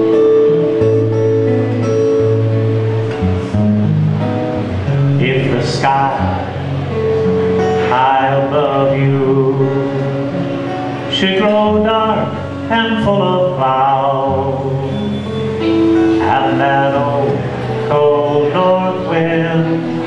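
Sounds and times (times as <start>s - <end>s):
acoustic guitar playing: 0.0s - 20.0s
man singing: 5.1s - 7.0s, 7.6s - 10.4s, 11.1s - 20.0s.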